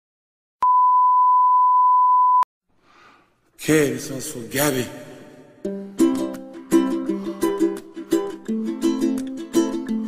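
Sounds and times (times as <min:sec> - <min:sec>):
steady test tone beep: 0:00.6 - 0:02.5.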